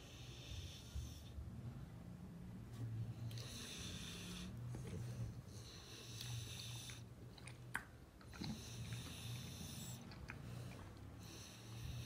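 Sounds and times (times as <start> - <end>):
dog breathing noisily: 3.2 - 7.1, 8.3 - 12.0.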